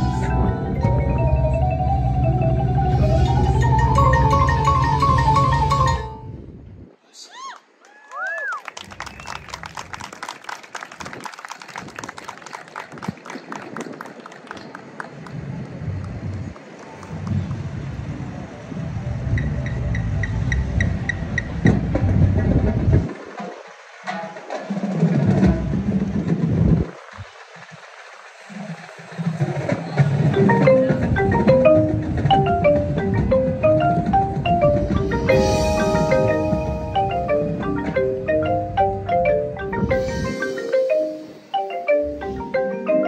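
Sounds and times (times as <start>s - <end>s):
high mallet notes: 0.0s - 6.3s, 30.3s - 43.0s.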